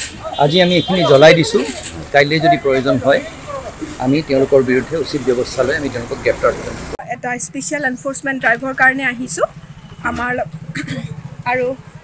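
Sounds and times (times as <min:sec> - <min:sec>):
engine idling: 0:00.0 - 0:12.0
man speaking: 0:00.4 - 0:06.9
woman speaking: 0:07.0 - 0:10.5, 0:11.5 - 0:11.8.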